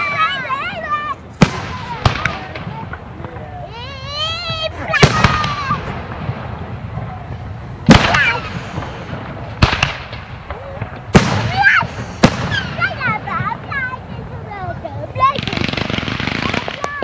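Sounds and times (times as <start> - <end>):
spectators calling out: 0.0 - 9.2
fireworks bursting: 0.0 - 17.0.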